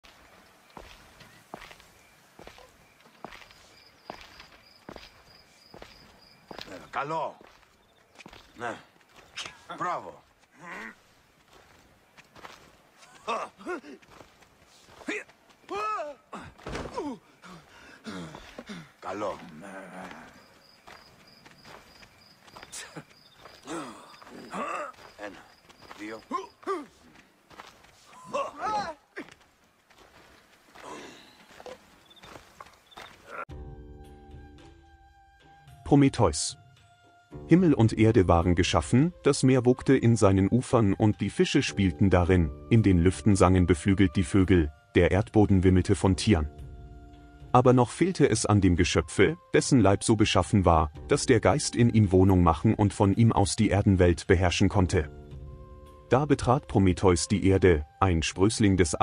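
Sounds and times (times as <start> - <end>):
slow footsteps: 0.0 - 33.5
faint high chirp: 28.1 - 28.7, 32.0 - 33.2
men's short shouts: 28.2 - 29.4.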